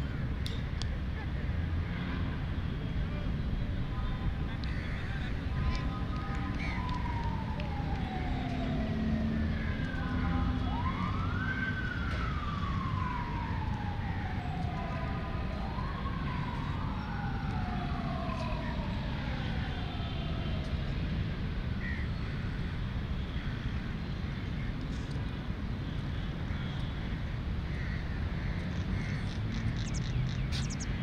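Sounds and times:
emergency vehicle siren wailing: 4.6s - 21.8s, 28.8s - 31.0s.

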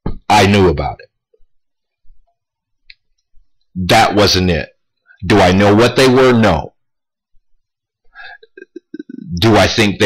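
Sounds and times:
man's mouth and throat sounds: 8.3s - 9.4s.

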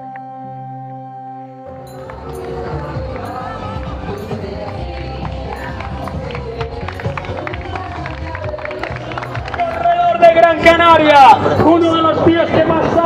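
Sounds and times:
music playing: 0.0s - 13.0s
crowd noise: 1.6s - 13.0s
hand clapping: 1.9s - 10.2s.

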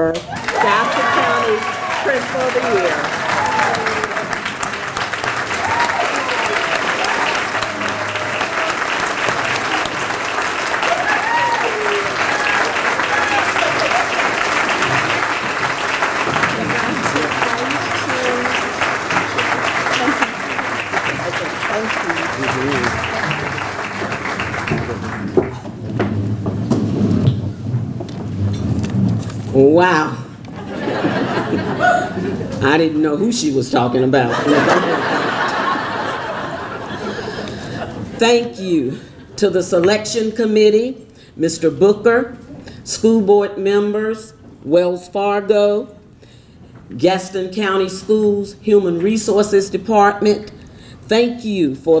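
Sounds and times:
crowd applauding: 0.0s - 26.0s, 34.3s - 38.0s.

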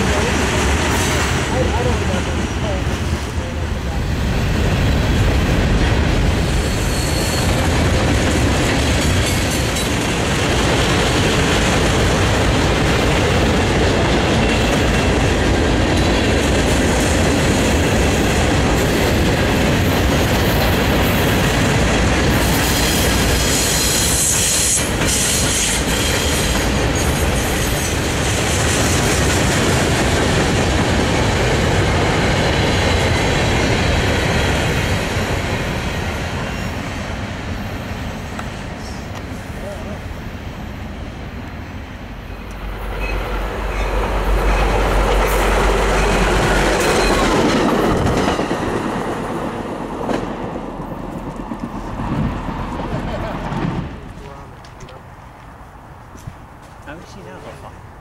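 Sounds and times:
train wheels rumbling and clacking: 0.0s - 58.0s
high-pitched wheel squeal: 6.5s - 7.6s.

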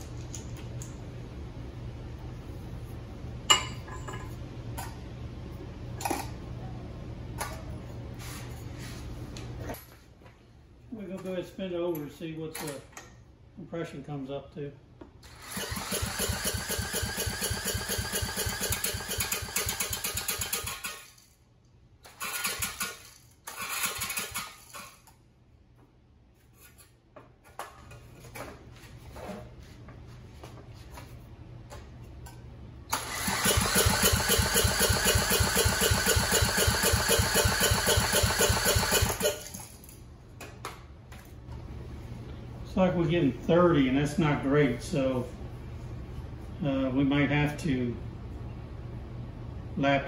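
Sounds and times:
engine compression strokes: 32.9s - 39.5s.

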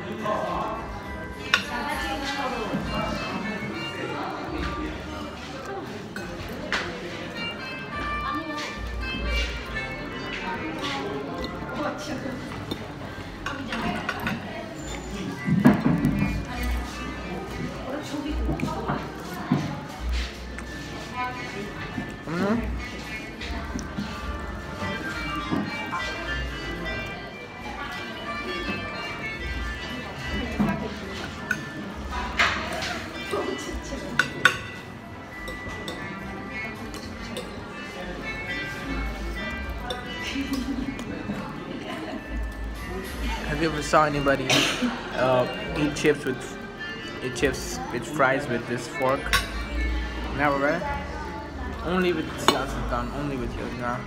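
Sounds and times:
background music: 0.0s - 54.0s
cutlery clinking on a plate: 12.5s - 16.7s, 30.5s - 37.9s, 39.8s - 41.0s, 49.1s - 49.7s.

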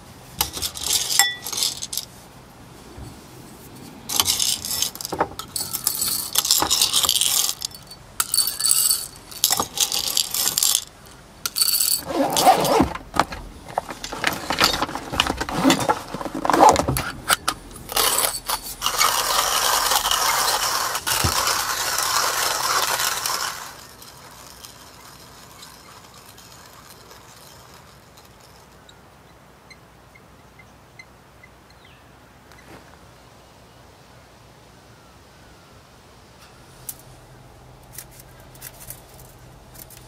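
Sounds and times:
coffee beans rattling into grinder: 0.4s - 2.1s, 4.1s - 17.0s, 17.8s - 28.9s
plastic pockets rustling: 8.6s - 26.6s.

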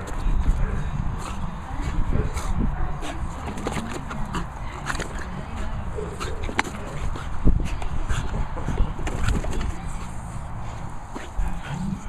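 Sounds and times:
dog snuffling breath: 0.0s - 12.0s.

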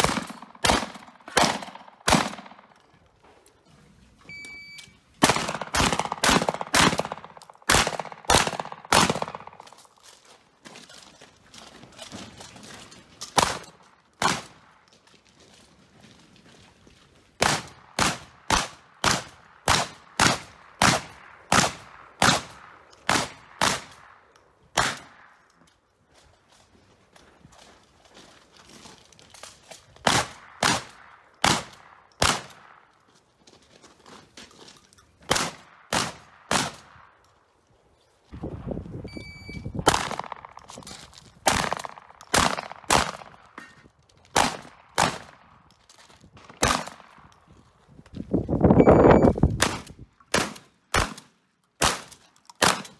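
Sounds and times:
shotgun shots: 0.0s - 2.6s, 5.2s - 9.8s, 13.4s - 14.6s, 17.4s - 24.1s, 24.7s - 25.4s, 30.0s - 32.8s, 35.3s - 36.9s, 39.8s - 40.7s, 41.4s - 43.5s, 44.3s - 45.5s, 46.4s - 47.2s, 49.5s - 52.9s
short high beep: 4.3s - 5.0s, 39.1s - 39.8s, 48.8s - 49.4s.

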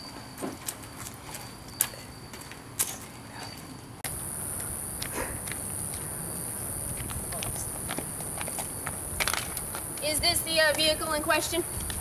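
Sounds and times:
steady high hiss: 4.1s - 12.0s
footsteps on pavement: 4.2s - 12.0s.

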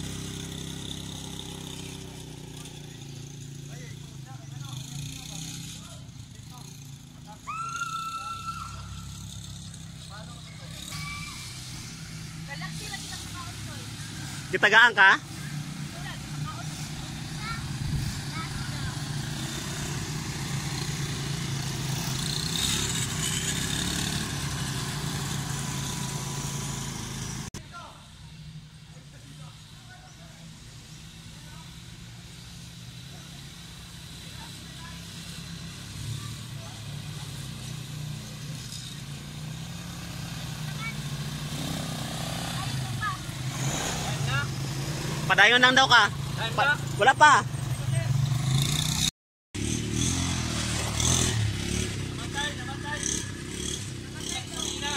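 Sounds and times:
quad bike engines droning: 0.0s - 54.9s.

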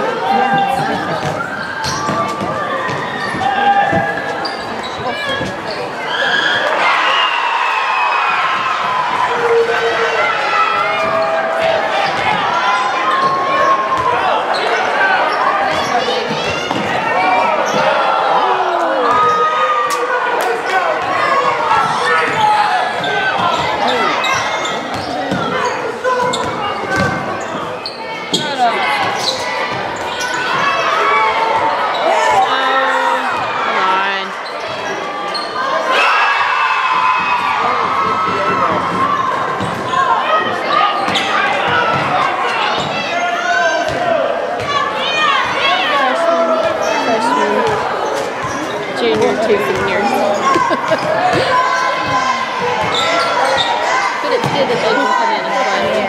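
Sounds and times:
crowd voices and shouting: 0.0s - 56.0s.

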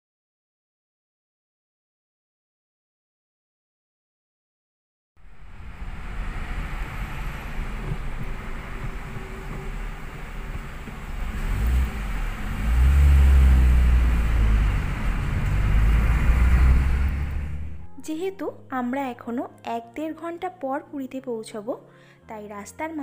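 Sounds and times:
car engine and road noise: 5.2s - 18.5s
deep rumble: 5.2s - 18.8s.

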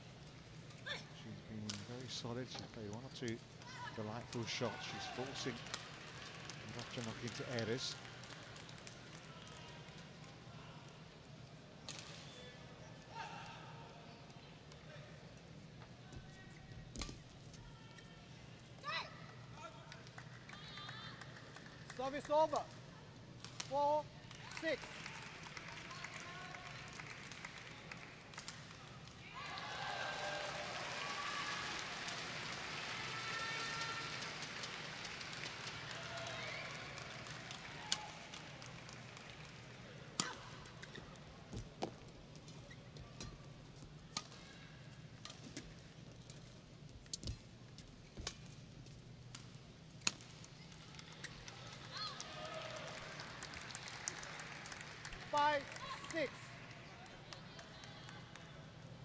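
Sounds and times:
arena crowd chatter: 22.6s - 45.0s, 50.5s - 59.0s.

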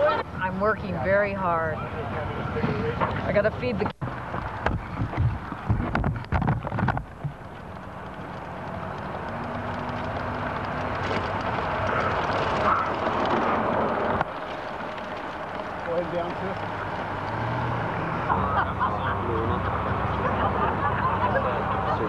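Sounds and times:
steady rushing noise: 1.6s - 22.0s
wind buffeting microphone: 1.9s - 18.3s.

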